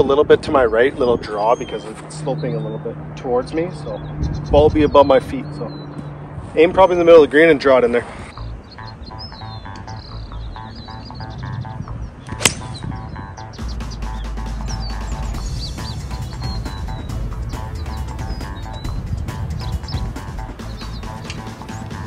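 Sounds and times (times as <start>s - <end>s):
golf club striking a ball: 12.3s - 12.8s
background music with a beat: 12.4s - 22.0s.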